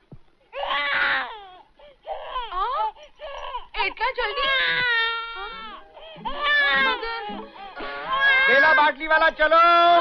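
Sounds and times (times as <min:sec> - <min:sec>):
newborn baby crying: 0:00.5 - 0:09.2.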